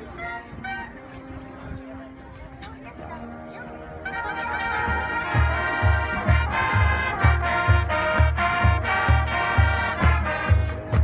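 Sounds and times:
marching band brass notes: 0:00.0 - 0:11.0.

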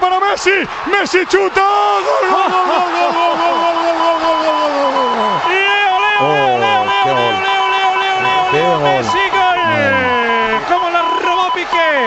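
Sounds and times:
commentator shouting goal: 0:03.5 - 0:12.0.

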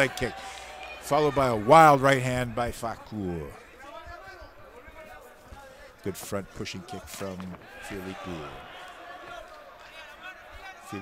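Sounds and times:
spectators shouting: 0:00.0 - 0:02.3, 0:07.2 - 0:11.0.

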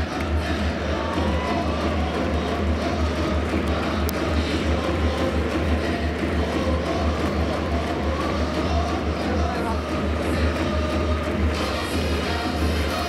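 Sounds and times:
music over public-address system: 0:00.0 - 0:13.0.

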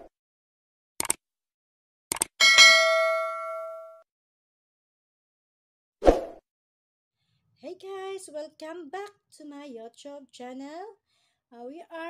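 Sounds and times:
notification bell ding: 0:02.4 - 0:04.0.

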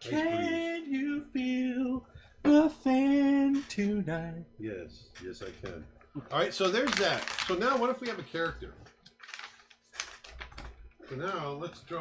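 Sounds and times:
paper rustling: 0:06.4 - 0:08.5, 0:09.1 - 0:11.2.

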